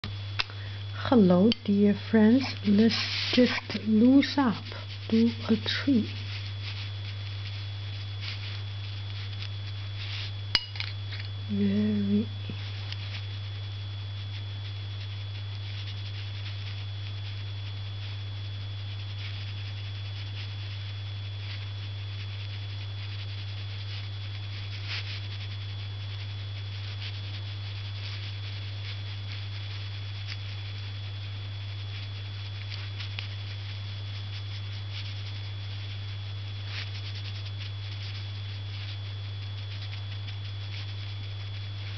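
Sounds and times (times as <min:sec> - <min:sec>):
steady low hum: 0:00.0 - 0:41.9
thin high whine: 0:00.0 - 0:41.9
brush strokes on paper: 0:01.2 - 0:10.5, 0:14.2 - 0:41.9.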